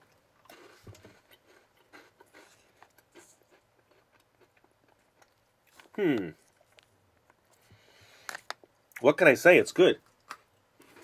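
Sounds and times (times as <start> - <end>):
soft crunches of chewing: 0.0 - 9.0, 10.0 - 11.0.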